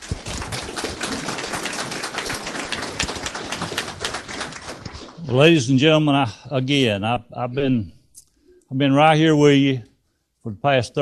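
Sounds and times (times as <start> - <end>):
audience applauding: 0.0 - 5.8.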